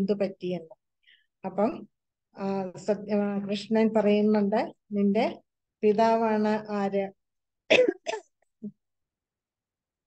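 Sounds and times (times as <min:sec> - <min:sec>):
woman coughing: 0:07.7 - 0:08.4.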